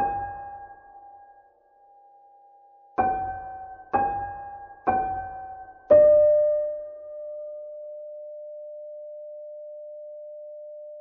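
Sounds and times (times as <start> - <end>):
dramatic piano chord: 3.0 - 7.8.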